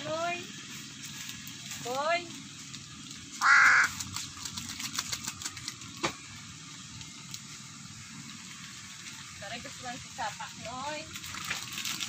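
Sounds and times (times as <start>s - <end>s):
bird splashing in water: 3.4s - 5.7s.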